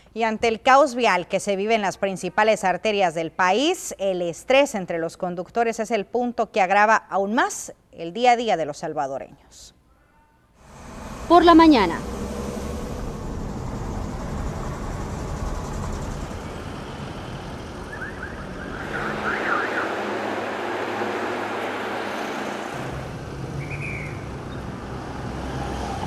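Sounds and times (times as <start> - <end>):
rumble of traffic: 10.6 - 26.0.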